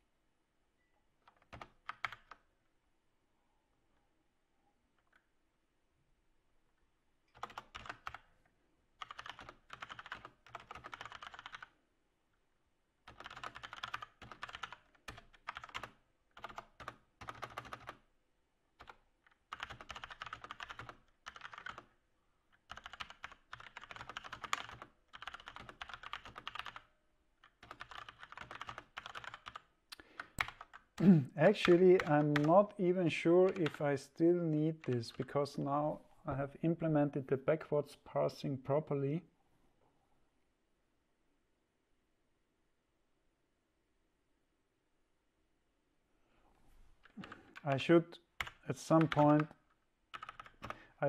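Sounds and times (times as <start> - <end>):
computer keyboard typing: 1.2 - 2.4, 7.3 - 8.3, 9.0 - 11.7, 13.1 - 18.0, 18.8 - 21.9, 22.6 - 31.0, 31.6 - 32.8, 33.4 - 33.8, 48.4 - 50.8.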